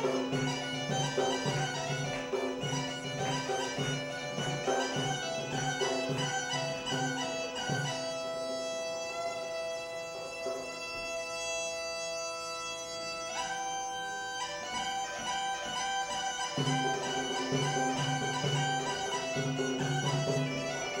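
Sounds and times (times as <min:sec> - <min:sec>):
drum keeping time: 0:00.0 - 0:08.0, 0:14.8 - 0:21.0
bagpipe melody with drone: 0:00.0 - 0:21.0.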